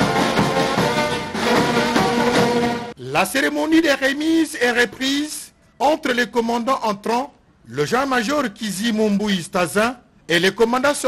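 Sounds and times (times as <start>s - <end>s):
brass band playing: 0.0s - 3.0s.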